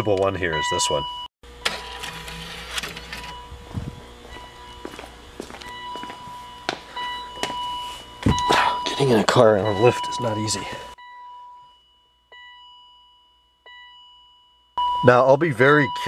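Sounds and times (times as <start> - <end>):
car door warning chime: 0.0 - 2.0, 3.1 - 16.0
footsteps: 3.6 - 8.7.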